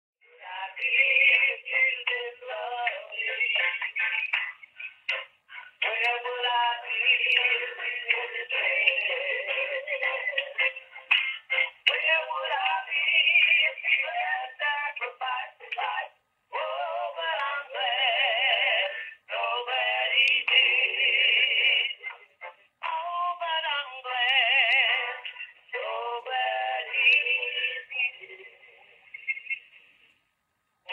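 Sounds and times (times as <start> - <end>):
tinny music through phone speaker: 0.2 - 30.9.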